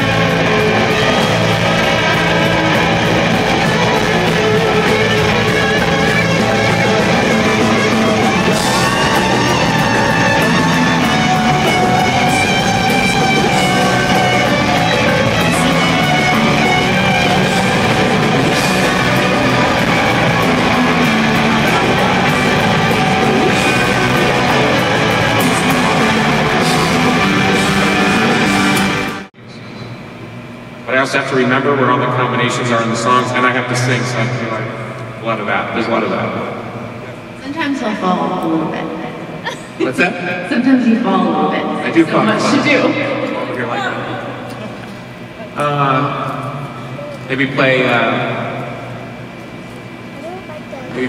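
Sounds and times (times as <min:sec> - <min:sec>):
loud electric guitar rock jam: 0:00.0 - 0:29.3.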